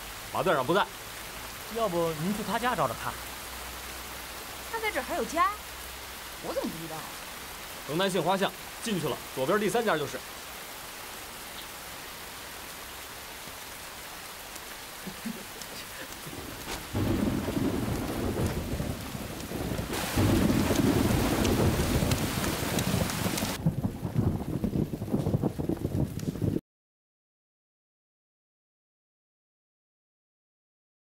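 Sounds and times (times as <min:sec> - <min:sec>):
steady rain: 0:00.0 - 0:26.6
low rumble of thunder: 0:16.2 - 0:26.6.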